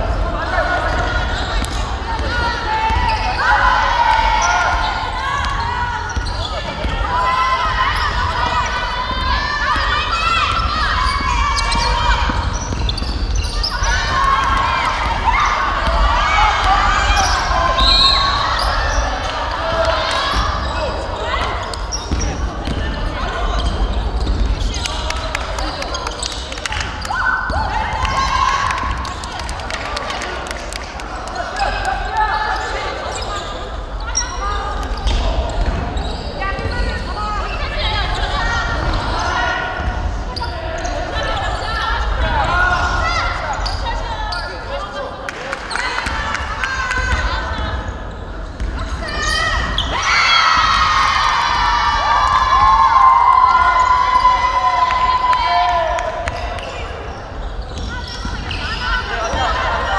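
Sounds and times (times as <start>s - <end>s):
players shouting in a hall: 0.0s - 59.9s.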